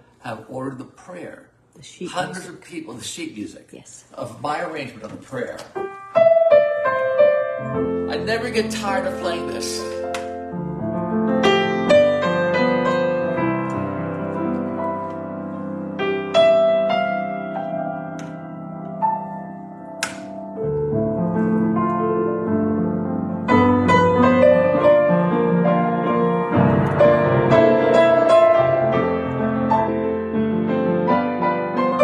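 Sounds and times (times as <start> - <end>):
slow piano melody: 5.7 - 32.0
low piano bass notes: 6.2 - 32.0.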